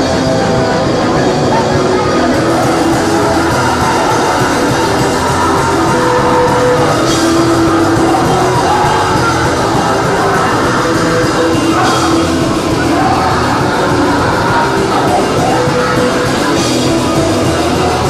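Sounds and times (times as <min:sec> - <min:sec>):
electric guitar: 0:00.0 - 0:18.0
live punk rock band: 0:00.0 - 0:18.0
person singing: 0:00.0 - 0:18.0.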